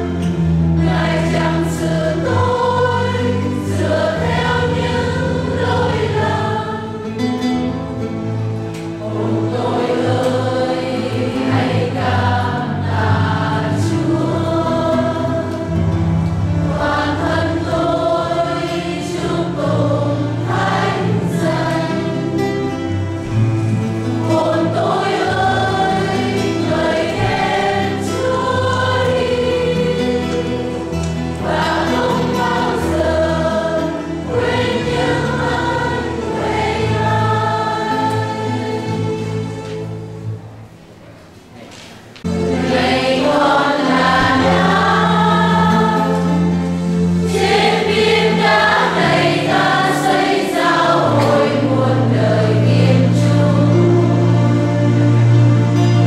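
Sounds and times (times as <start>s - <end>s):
choir singing a hymn: 0.0s - 41.4s, 42.2s - 56.0s
low steady accompaniment: 0.0s - 56.0s.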